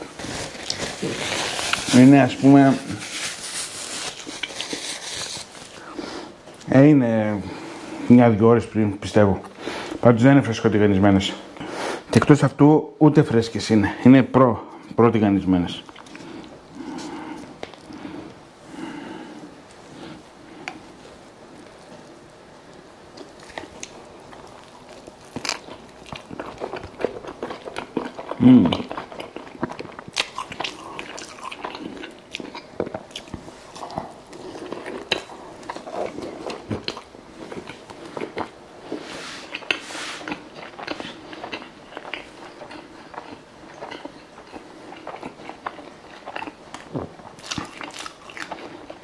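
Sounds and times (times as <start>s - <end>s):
paper napkin rustling: 0.0s - 5.8s, 38.8s - 40.3s
person chewing: 15.9s - 20.8s, 23.1s - 49.0s.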